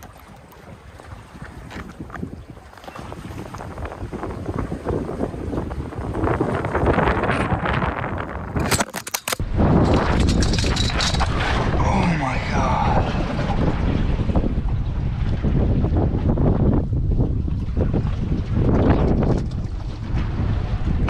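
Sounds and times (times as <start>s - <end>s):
sea water lapping: 0.0s - 8.6s, 9.6s - 21.0s
wind buffeting microphone: 0.0s - 8.8s, 9.4s - 21.0s
camera handling rumble: 8.5s - 11.5s.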